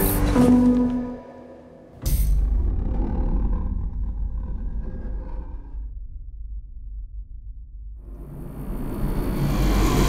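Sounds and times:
deep rumble: 2.0 - 10.0.

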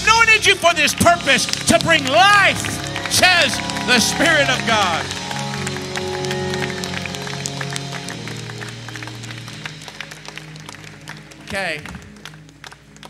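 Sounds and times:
soft music of low chords: 0.0 - 13.0
hand claps: 0.3 - 13.0.

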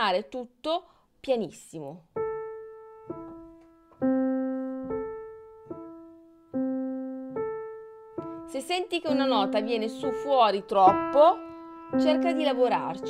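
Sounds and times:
soft grand piano chords: 2.1 - 13.0.

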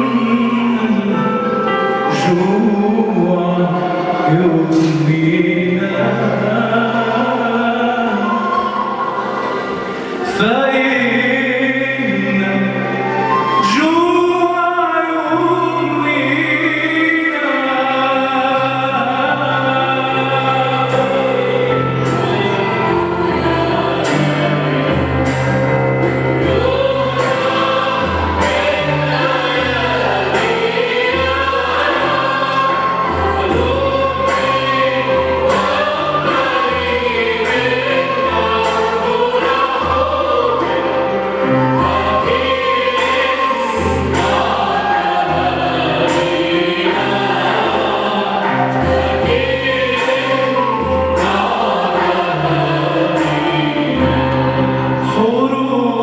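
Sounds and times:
choir singing: 0.0 - 56.0
keyboard chords: 0.0 - 56.0.

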